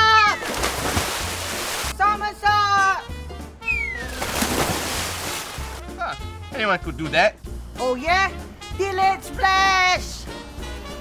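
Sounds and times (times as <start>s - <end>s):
splash into swimming pool: 0.4s - 2.0s, 4.0s - 5.8s
whistle sliding down in pitch: 3.6s - 4.2s.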